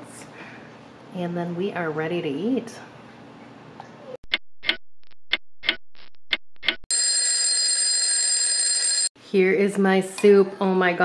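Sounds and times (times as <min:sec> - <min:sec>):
alarm bell ringing: 0:06.9 - 0:09.1.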